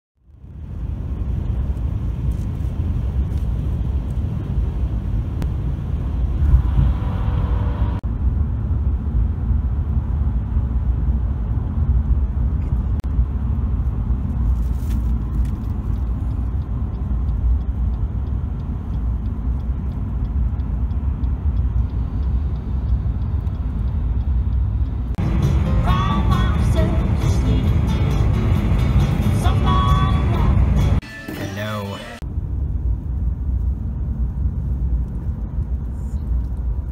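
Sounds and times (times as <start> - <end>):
car road noise rumble: 0.2 - 36.9
music: 25.2 - 32.2.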